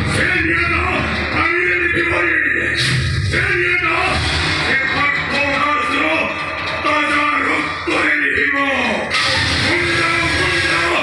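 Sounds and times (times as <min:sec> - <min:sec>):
backing music: 0:00.0 - 0:11.0.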